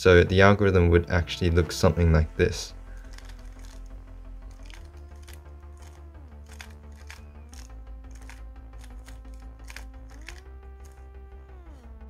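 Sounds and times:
soft background music: 0.0s - 12.0s
speed cube clicking: 3.0s - 3.9s, 4.5s - 11.0s.

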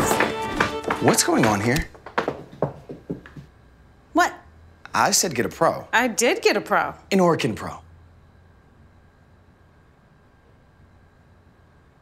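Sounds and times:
dance steps on wooden floor: 0.0s - 3.5s.

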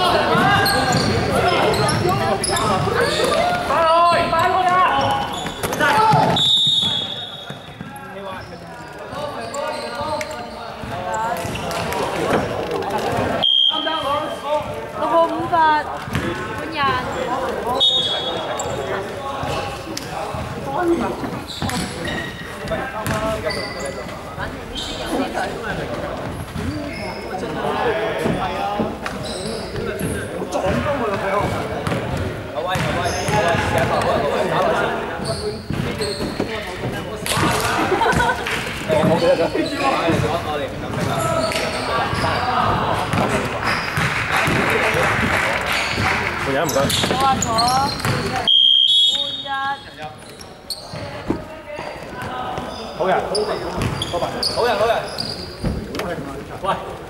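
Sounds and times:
voices echoing: 0.0s - 57.0s
basketball bouncing on court floor: 15.9s - 16.7s, 23.0s - 23.4s, 30.7s - 34.1s, 43.1s - 45.0s, 46.8s - 48.4s, 53.8s - 54.1s.

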